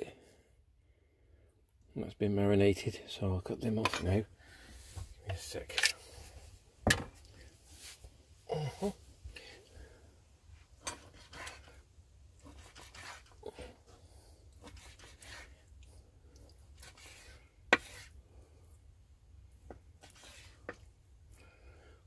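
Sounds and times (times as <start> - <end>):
knife slicing meat on board: 10.8 - 11.7, 12.4 - 13.4, 14.6 - 15.5, 16.8 - 18.2.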